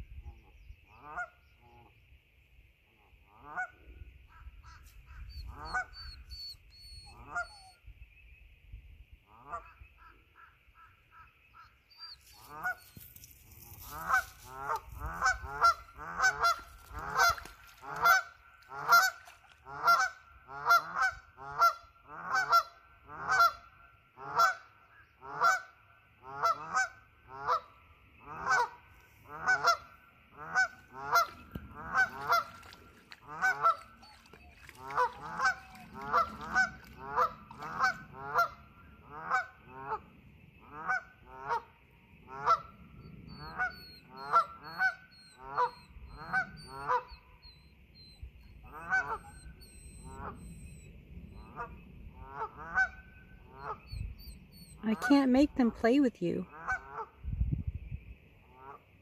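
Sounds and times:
geese honking: 0:07.0 - 0:07.6, 0:12.3 - 0:42.8, 0:43.4 - 0:47.2, 0:48.6 - 0:50.8, 0:51.4 - 0:53.9, 0:56.5 - 0:57.1.

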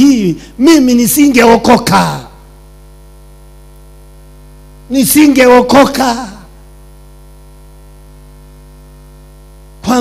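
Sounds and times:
man speaking loudly: 0:00.0 - 0:02.4, 0:04.9 - 0:06.5
electrical mains hum: 0:00.0 - 0:10.0.

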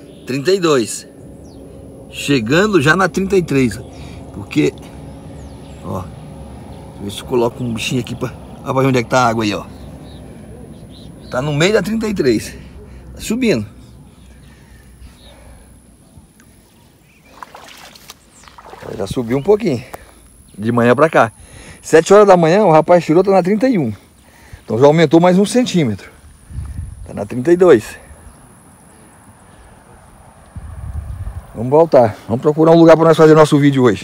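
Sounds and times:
faint low rumble: 0:00.0 - 0:22.0
vegetation rustling: 0:03.4 - 0:21.2
water sloshing: 0:14.0 - 0:20.2.

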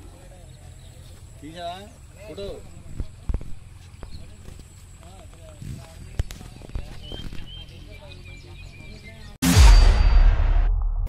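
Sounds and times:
faint distant voices: 0:00.0 - 0:09.4.

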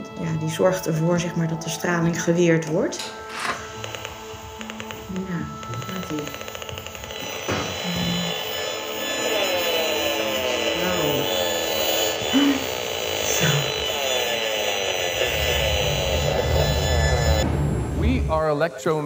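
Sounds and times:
electronic rasping buzz: 0:00.0 - 0:18.2.

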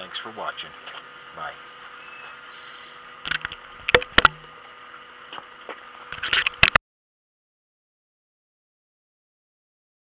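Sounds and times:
background hum: 0:00.0 - 0:06.8.

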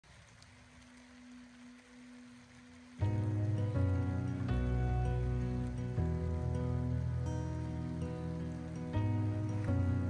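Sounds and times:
faint rain: 0:00.0 - 0:10.0
background music with chords: 0:03.0 - 0:10.0.

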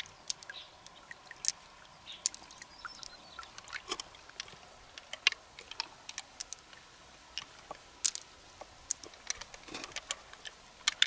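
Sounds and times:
pearls clicking together: 0:00.0 - 0:11.0.

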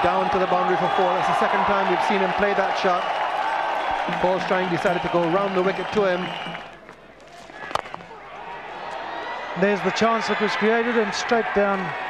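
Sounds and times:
faint stadium crowd noise: 0:00.0 - 0:12.0.

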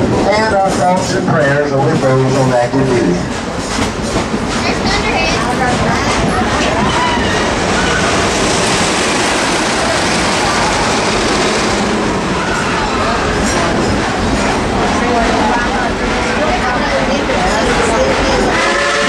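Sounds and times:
train wheels on track: 0:00.0 - 0:19.0
rushing air: 0:07.4 - 0:14.8.

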